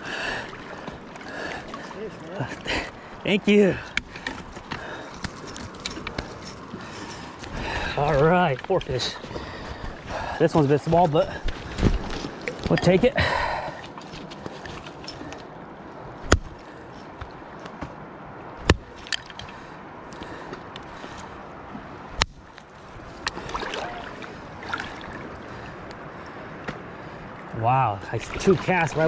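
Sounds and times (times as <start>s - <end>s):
flowing river water: 0.0s - 29.0s.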